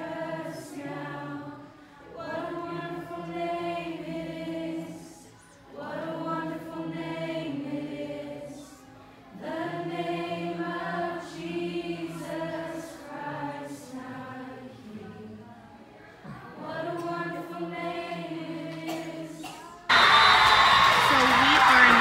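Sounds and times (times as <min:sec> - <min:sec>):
group of people singing: 0:00.0 - 0:19.8.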